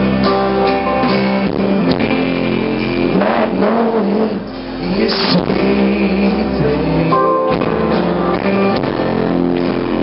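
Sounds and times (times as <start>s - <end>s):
drums: 0.0s - 10.0s
keyboard: 0.0s - 10.0s
strummed guitars: 0.0s - 10.0s.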